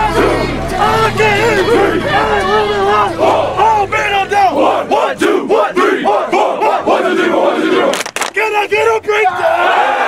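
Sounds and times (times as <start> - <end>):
men shouting and chanting: 0.0 - 10.0.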